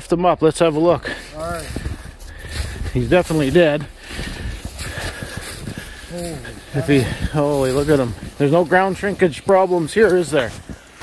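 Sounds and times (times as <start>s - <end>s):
footsteps crunching through snow: 0.6s - 11.0s
wind rumble on microphone: 1.5s - 11.0s.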